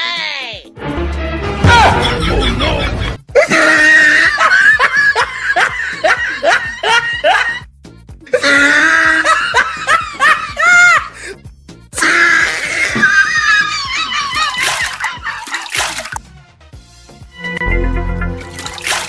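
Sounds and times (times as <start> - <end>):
background music: 0.0 - 19.0
person laughing: 1.8 - 7.6, 13.5 - 16.2.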